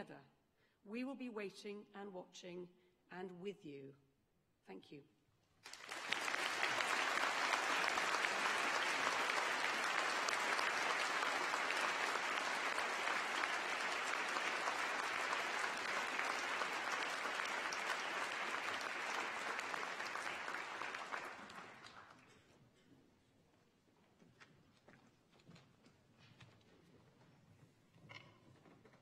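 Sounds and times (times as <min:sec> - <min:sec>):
large audience applauding: 0:05.6 - 0:22.3.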